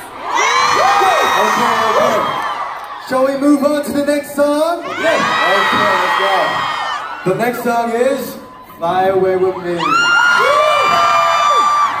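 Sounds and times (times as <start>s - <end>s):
crowd screaming and cheering: 0.0s - 12.0s.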